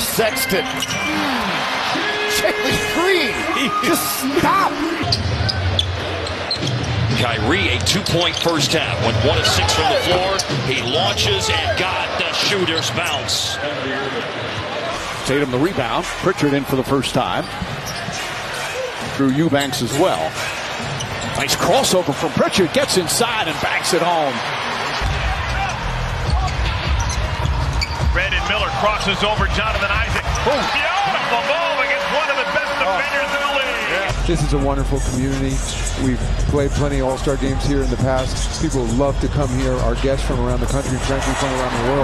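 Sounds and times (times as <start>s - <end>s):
arena crowd noise: 0.0s - 42.0s.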